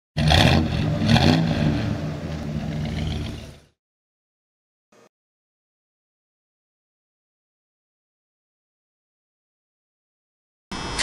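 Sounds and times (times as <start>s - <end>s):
car engine revving: 0.2s - 3.7s.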